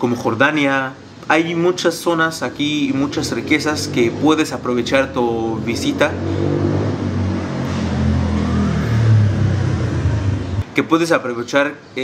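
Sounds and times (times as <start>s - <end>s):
vehicle engine running: 7.0s - 10.6s.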